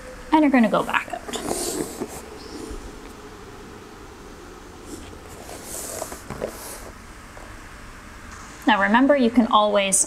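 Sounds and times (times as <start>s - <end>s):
person rustling on exercise mat: 0.7s - 3.0s, 4.8s - 7.0s.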